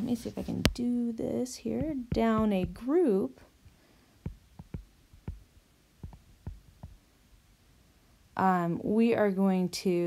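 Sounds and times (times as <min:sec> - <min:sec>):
stylus tapping on glass screen: 0:01.7 - 0:02.9, 0:04.2 - 0:07.0.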